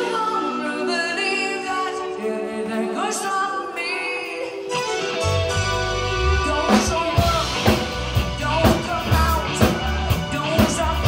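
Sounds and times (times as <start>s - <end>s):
woman singing: 0.0s - 4.8s
sparse band backing tones: 0.0s - 11.0s.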